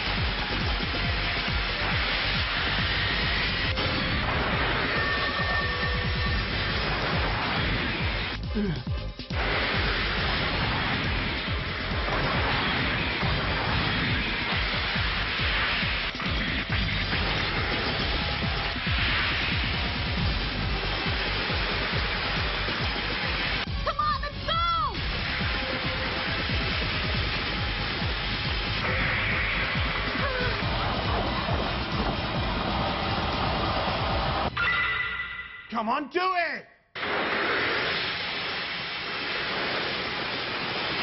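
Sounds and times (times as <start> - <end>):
background music: 0.0 - 36.5.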